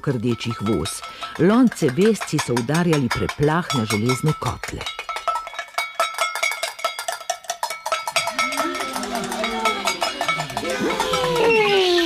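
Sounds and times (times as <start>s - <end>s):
metal pots clanging on kettles: 0.0s - 12.0s
voices calling out: 8.1s - 12.0s.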